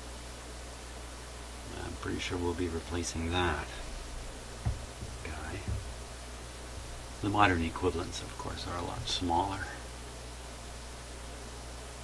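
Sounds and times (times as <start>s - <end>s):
even hiss: 1.1s - 12.0s
low hum: 3.2s - 11.0s.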